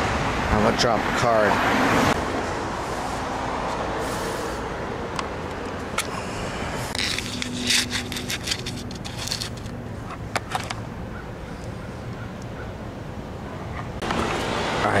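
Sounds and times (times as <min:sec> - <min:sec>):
handling noise: 0:06.9 - 0:11.0
dry leaves rustling: 0:07.0 - 0:09.8.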